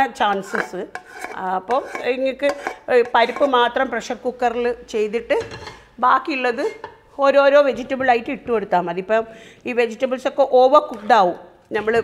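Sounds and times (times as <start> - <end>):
wooden spatula scraping metal pot: 0.0 - 7.1.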